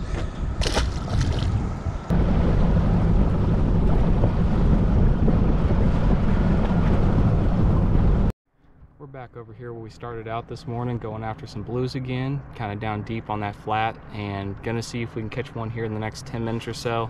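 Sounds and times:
outboard motor drone: 0.0 - 8.3
wind buffeting microphone: 0.0 - 8.3.

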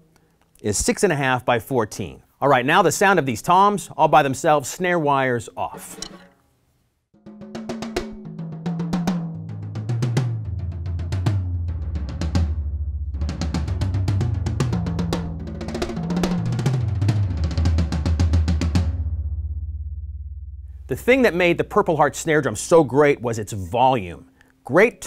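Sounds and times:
tom drum fills: 7.2 - 19.6.

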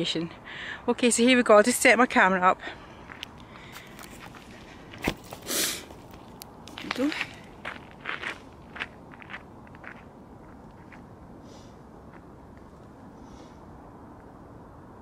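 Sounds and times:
footsteps on gravel: 3.0 - 11.1.

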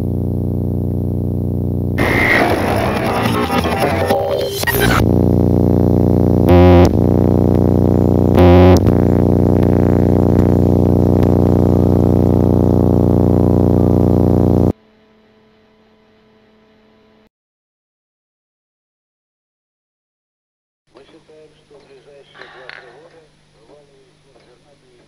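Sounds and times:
distorted electronic drone: 0.0 - 14.7
faint hum: 0.0 - 14.7.

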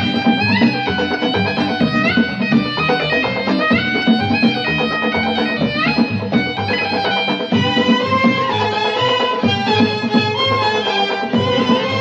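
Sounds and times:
hand drum rhythm: 0.0 - 12.0
keyboard: 0.0 - 12.0
violins: 0.0 - 12.0.

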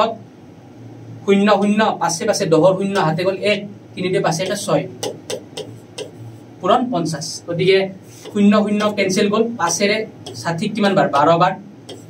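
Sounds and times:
man speaking: 1.3 - 12.0.

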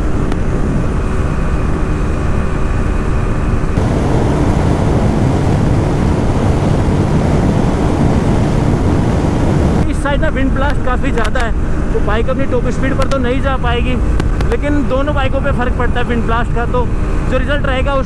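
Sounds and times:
heavy wind roar: 0.0 - 18.0
motorcycle engine at high revs: 3.8 - 9.8.

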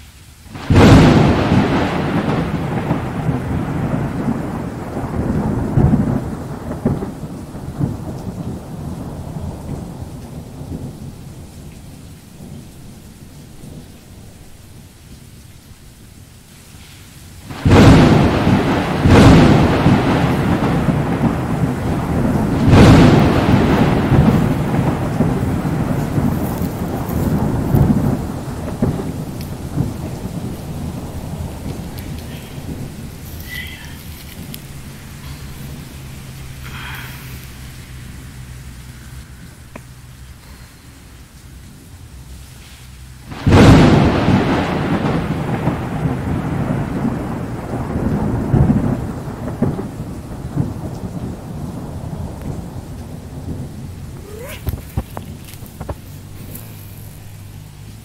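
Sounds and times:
thunder rumbling: 0.0 - 16.5, 17.2 - 58.0
rain falling: 0.0 - 58.0
loud thunder clap: 0.5 - 11.4, 17.4 - 37.0, 43.2 - 56.5.

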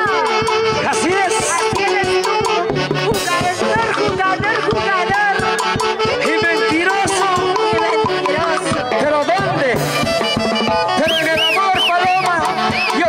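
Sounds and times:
live band music: 0.0 - 13.0
saxophones: 0.0 - 13.0
woman singing into a microphone: 7.1 - 9.0.

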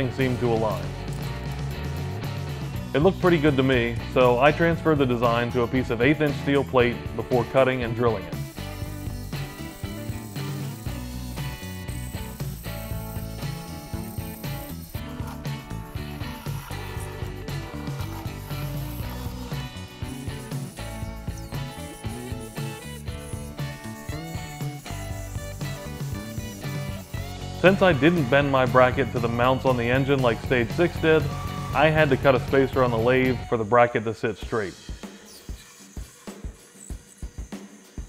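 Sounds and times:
instrumental music with steady beat: 0.0 - 33.5.

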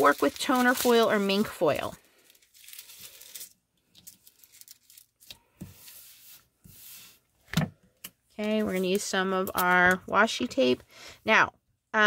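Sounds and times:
foil rustling and crinkling: 0.0 - 6.2.

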